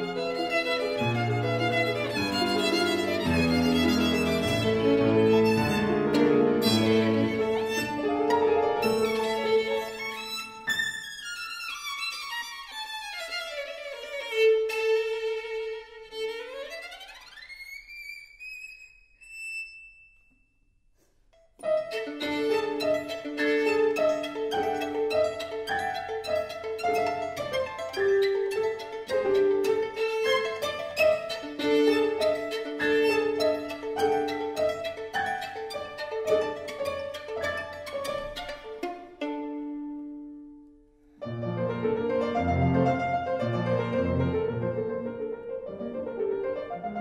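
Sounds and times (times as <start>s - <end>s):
solo violin glissando: 0.0s - 20.0s, 21.6s - 40.6s, 41.2s - 47.0s.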